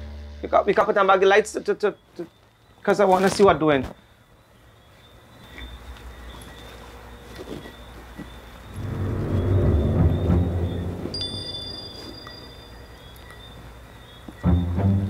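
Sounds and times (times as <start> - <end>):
low ominous rumble: 8.7 - 12.1
thin high steady tone: 8.7 - 13.8.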